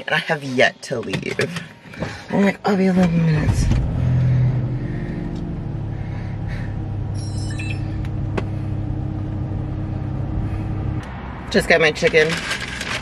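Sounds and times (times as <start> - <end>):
car engine droning: 1.5 - 13.0
high tones: 7.1 - 8.2.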